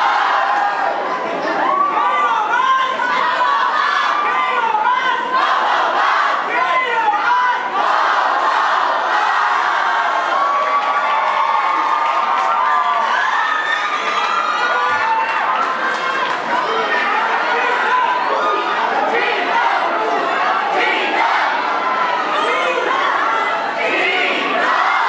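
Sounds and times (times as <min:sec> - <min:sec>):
crowd cheering and shouting: 0:00.0 - 0:25.0.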